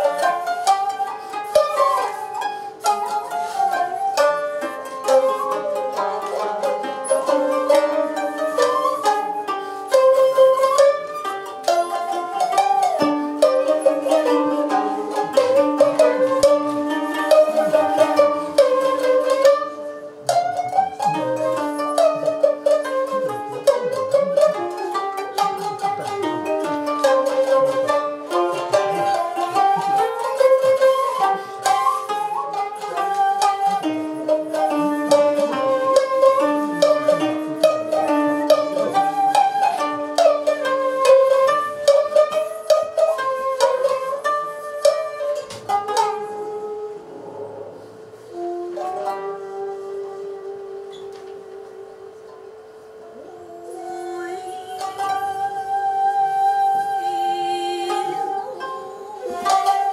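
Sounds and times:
koto and shamisen playing: 0:00.0 - 0:59.9.

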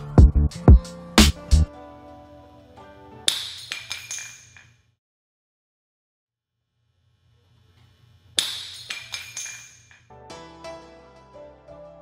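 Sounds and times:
background music: 0:00.0 - 0:03.8, 0:10.1 - 0:12.0.

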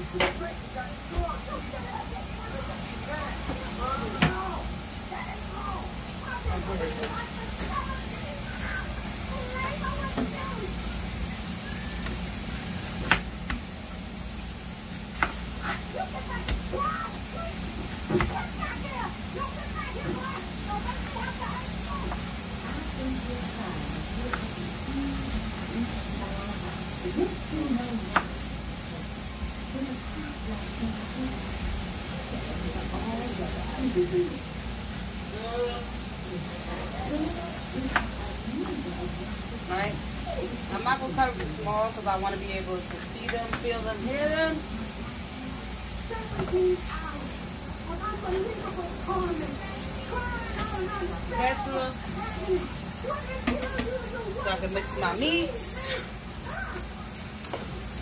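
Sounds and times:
meat sizzling in a pan: 0:00.0 - 0:58.0.

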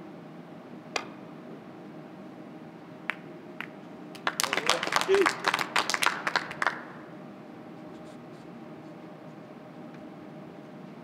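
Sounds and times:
audience applause: 0:04.2 - 0:07.0.

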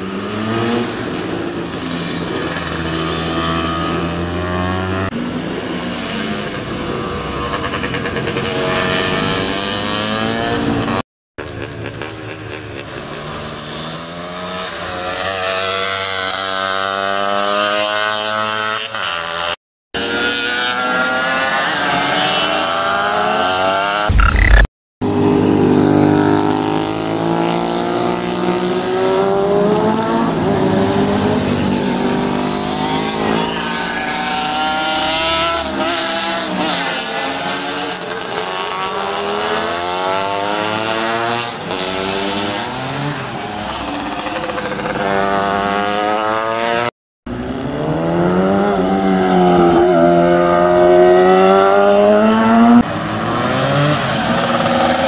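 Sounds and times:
racing motorcycles passing: 0:00.0 - 0:24.1, 0:25.1 - 0:55.0.

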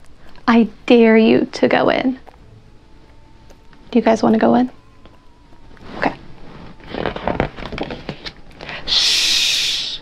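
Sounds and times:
book page turning: 0:05.7 - 0:08.8.

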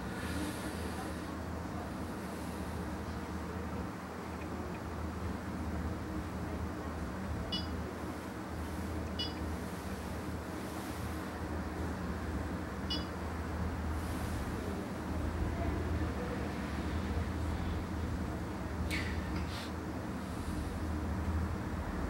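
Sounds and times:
steady low hum: 0:00.0 - 0:22.0
short electronic beeps: 0:07.5 - 0:07.7, 0:09.2 - 0:09.4, 0:12.9 - 0:13.1.

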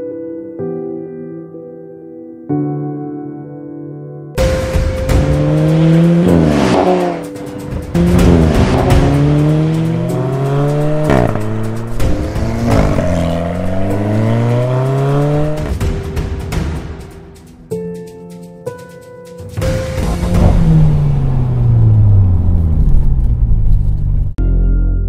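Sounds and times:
car engine accelerating: 0:05.1 - 0:15.9, 0:19.8 - 0:24.4.

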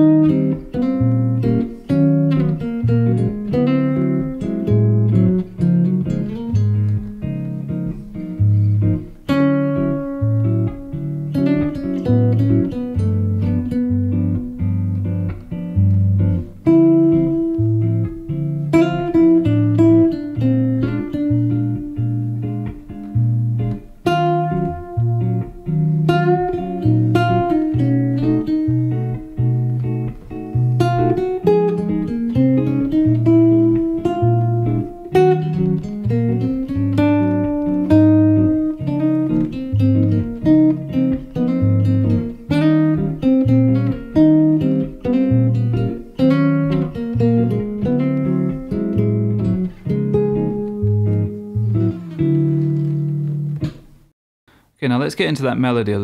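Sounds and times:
fingerstyle bossa nova guitar: 0:00.0 - 0:54.1.

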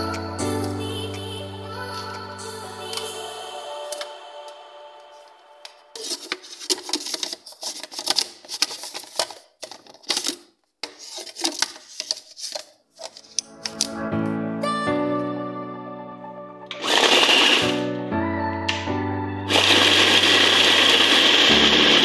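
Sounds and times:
background music with steady tones: 0:00.0 - 0:06.0, 0:13.2 - 0:22.0.

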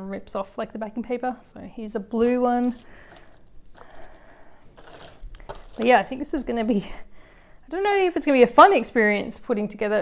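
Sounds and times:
puzzle piece set on table: 0:02.6 - 0:06.2
cardboard puzzle pieces rustling: 0:02.6 - 0:06.4.

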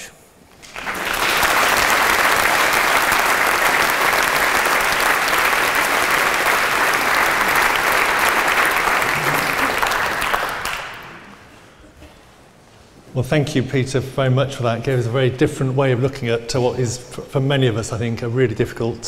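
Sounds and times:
audience applauding: 0:00.6 - 0:11.5.

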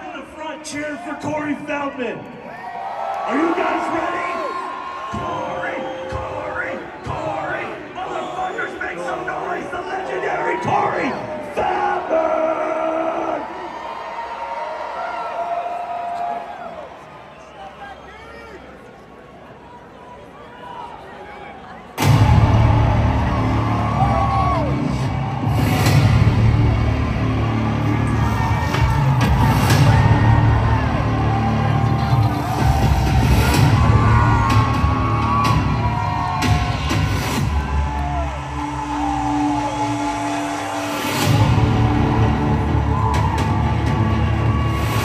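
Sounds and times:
crowd cheering and whooping: 0:02.4 - 0:06.5, 0:12.5 - 0:18.2, 0:22.0 - 0:45.0
loud music with heavy bass: 0:22.0 - 0:45.0.

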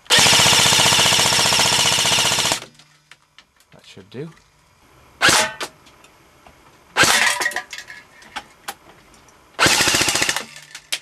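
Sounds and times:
airsoft rifle automatic burst: 0:00.1 - 0:02.7, 0:07.0 - 0:07.3, 0:09.6 - 0:10.8.

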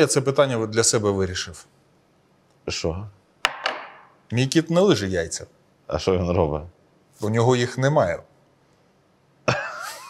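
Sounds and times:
man laughing explosively: 0:09.5 - 0:10.0.

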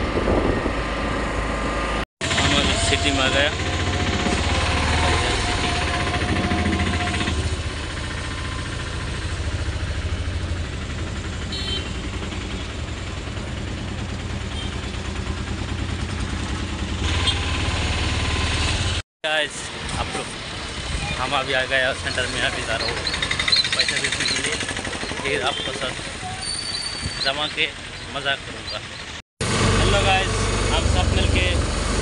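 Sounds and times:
rickshaw engine throbbing: 0:00.0 - 0:26.4, 0:27.2 - 0:32.0.

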